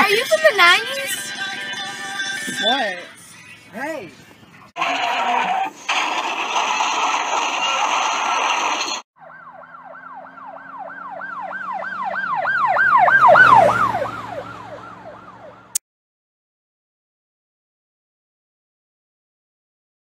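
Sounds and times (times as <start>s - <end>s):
loud noise: 4.8s - 9.0s
emergency vehicle siren wailing: 9.2s - 15.8s.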